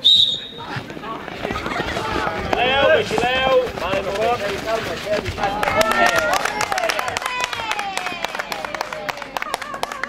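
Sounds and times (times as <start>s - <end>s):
shrill whistle blast: 0.0s - 0.6s
spectators shouting and cheering: 5.3s - 10.0s.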